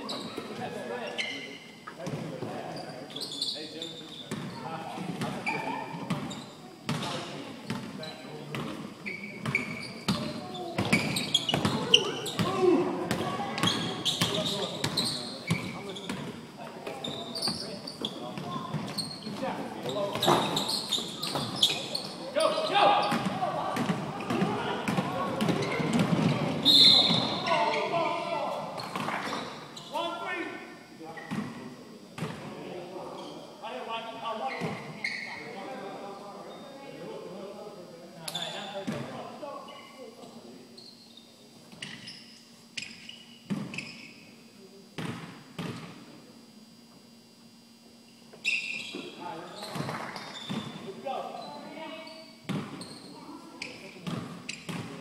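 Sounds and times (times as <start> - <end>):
basketball bouncing: 9.4 - 16.3, 23.1 - 26.5
players' voices echoing: 10.1 - 33.3.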